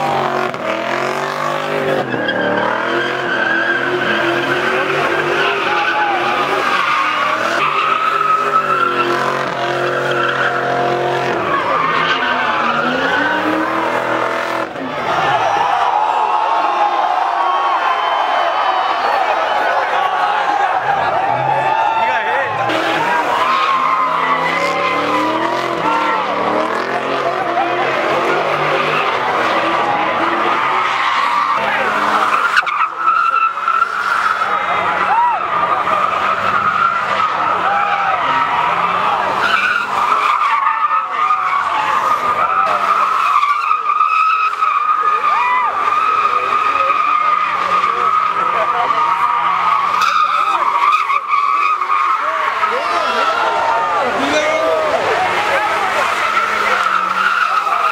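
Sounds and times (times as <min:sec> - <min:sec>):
tyres squealing: 0:00.0 - 0:57.9.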